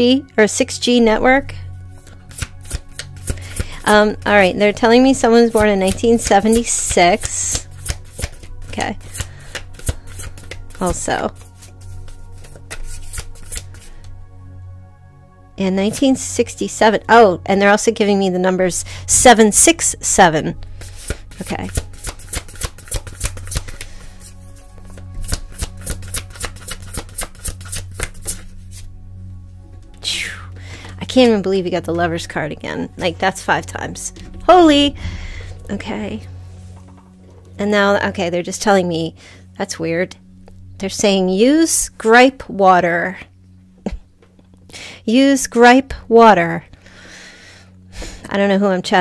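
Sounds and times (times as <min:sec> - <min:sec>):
cards being shuffled: 0:02.0 - 0:03.8, 0:07.2 - 0:13.9, 0:20.8 - 0:28.9.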